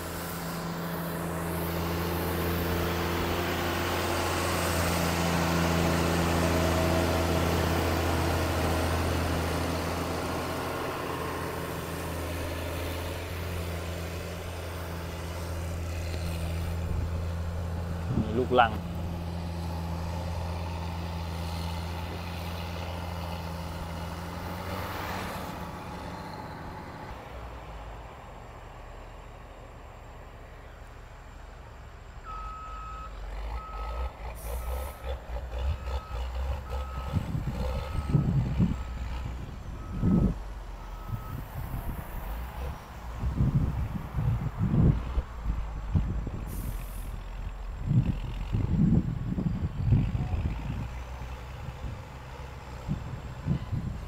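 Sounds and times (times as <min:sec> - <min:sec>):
diesel engines rumbling under load: 0:00.0 - 0:54.0
reversing alarm beeping: 0:35.7 - 0:41.7.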